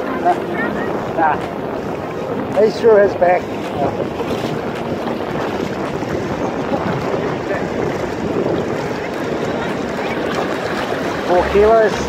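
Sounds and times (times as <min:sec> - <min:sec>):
shallow surf washing up beach: 0:00.0 - 0:12.0
wind buffeting microphone: 0:00.0 - 0:12.0.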